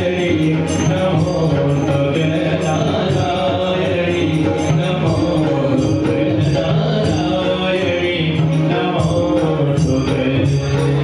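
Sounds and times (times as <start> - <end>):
devotional chanting: 0.0 - 11.0
instruments holding long notes: 0.0 - 11.0.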